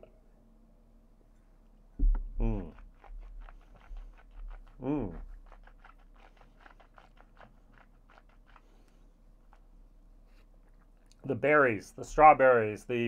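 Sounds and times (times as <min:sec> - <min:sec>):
man humming mmm: 0:02.4 - 0:02.8
wet mouth clicks: 0:02.4 - 0:09.7.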